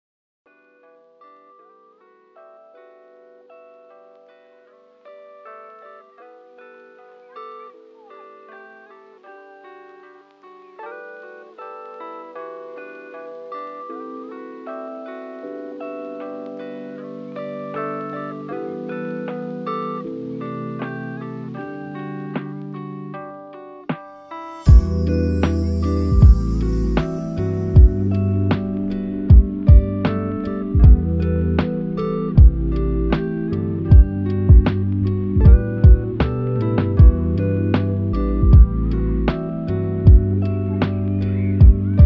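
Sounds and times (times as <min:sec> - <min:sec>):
plucked string melody: 0:05.2 - 0:42.0.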